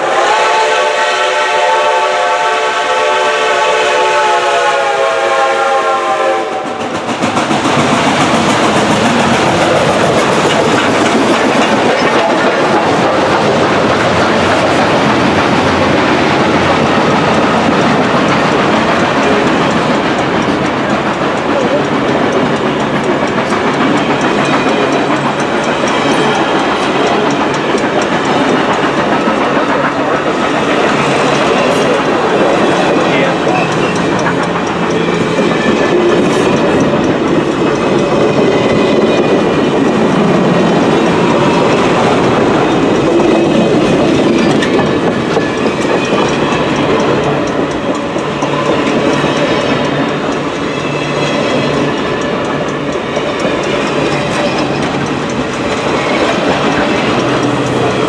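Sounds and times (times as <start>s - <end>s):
steel wheels on rails: 0.0s - 58.0s
train cars rolling past: 2.4s - 58.0s.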